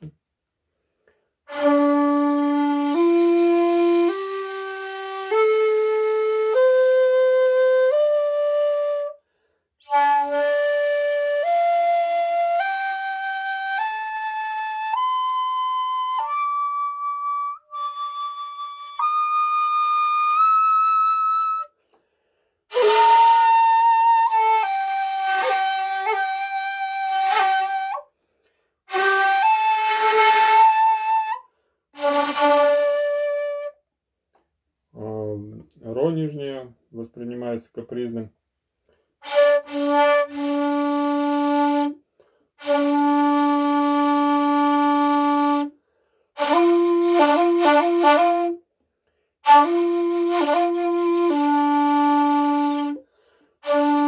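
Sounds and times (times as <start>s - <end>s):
bamboo flute held notes: 1.5s - 9.2s, 9.8s - 21.8s, 22.7s - 28.1s, 28.9s - 33.8s, 49.4s - 53.0s, 53.6s - 54.0s.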